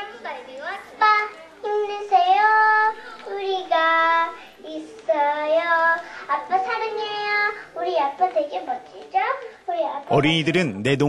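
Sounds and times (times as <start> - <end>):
girl singing into microphone: 0.0 - 10.1.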